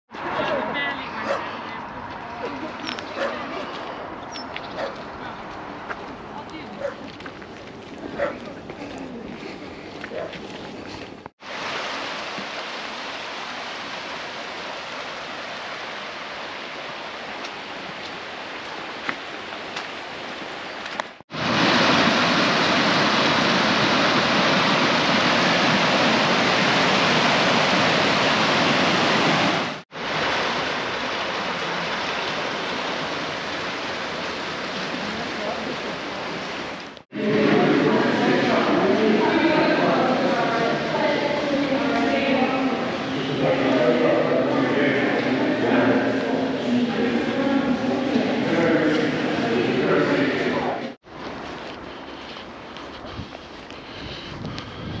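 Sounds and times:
stream rushing over rapids: 0:11.4 - 0:51.6.

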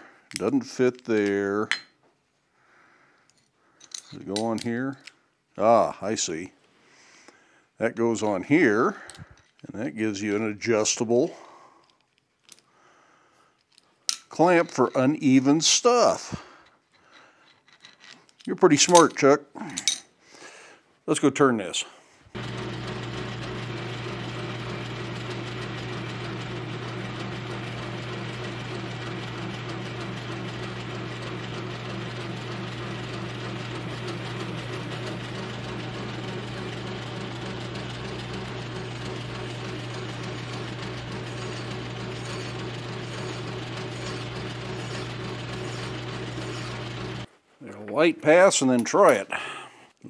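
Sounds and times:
metal lathe running: 0:22.4 - 0:47.3.

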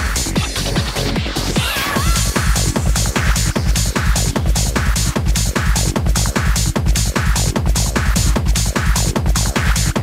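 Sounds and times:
bass: 0:00.0 - 0:10.0
hi-hat percussion: 0:00.0 - 0:10.0
kick drum: 0:00.0 - 0:10.0.

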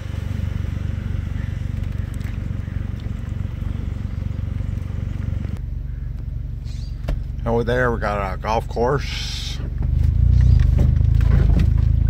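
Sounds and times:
vehicle engine and road rumble: 0:00.0 - 0:12.0.

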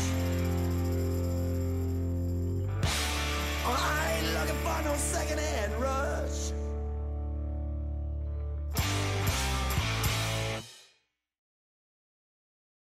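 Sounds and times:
rock band closing flourish: 0:00.0 - 0:06.4, 0:08.7 - 0:10.8
electric guitar chord ringing: 0:00.0 - 0:10.6
bass guitar: 0:00.0 - 0:10.7.

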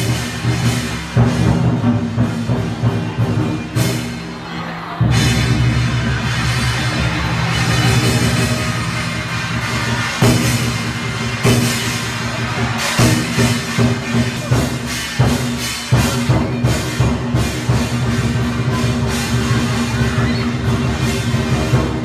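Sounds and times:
drum-heavy music: 0:00.0 - 0:22.0.

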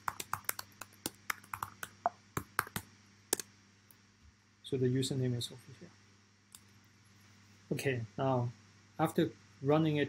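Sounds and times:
computer keyboard typing: 0:00.0 - 0:02.9.

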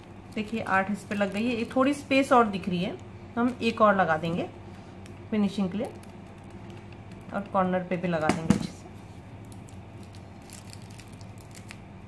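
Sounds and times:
plastic wrapper crinkling: 0:00.0 - 0:02.7, 0:03.4 - 0:07.6, 0:08.9 - 0:12.0
low steady hum: 0:00.0 - 0:12.0.

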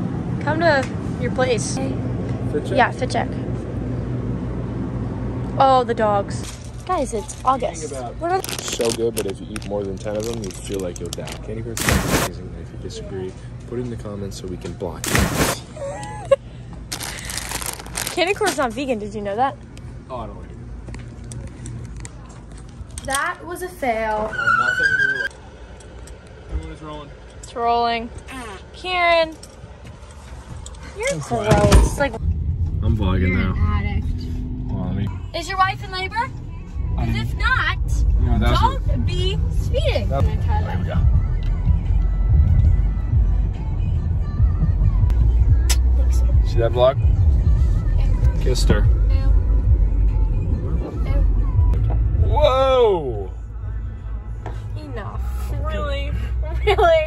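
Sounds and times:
car interior road and engine rumble: 0:00.0 - 0:15.6, 0:16.3 - 0:24.6, 0:25.2 - 0:57.0
steady low hum: 0:25.3 - 0:57.0.

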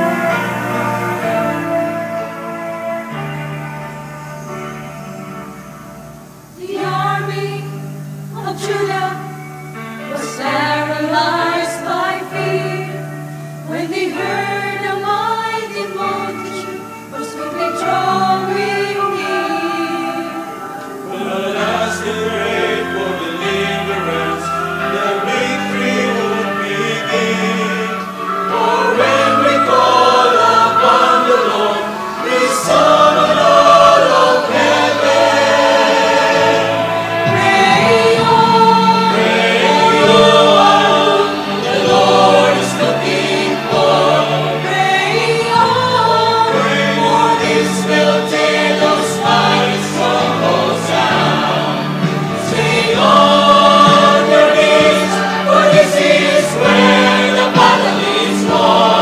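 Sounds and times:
mixed choir singing: 0:00.0 - 0:03.7, 0:06.2 - 0:59.0
steady held low notes: 0:25.0 - 0:43.3.

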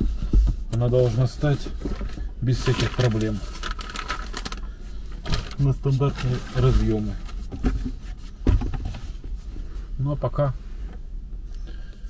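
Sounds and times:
dull thump: 0:07.5 - 0:09.1.

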